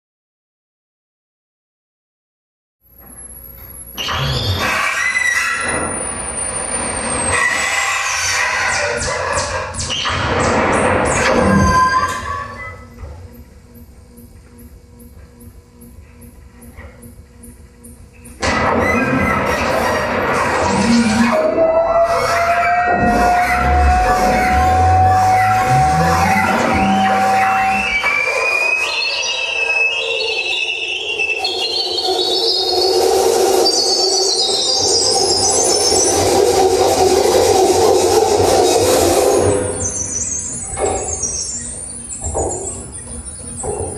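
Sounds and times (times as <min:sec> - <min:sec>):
noisy drone: 0:03.0 - 0:43.9
harsh electronic noise music: 0:03.3 - 0:43.9
high gliding tones: 0:21.0 - 0:37.6
rising held tone: 0:21.4 - 0:33.0.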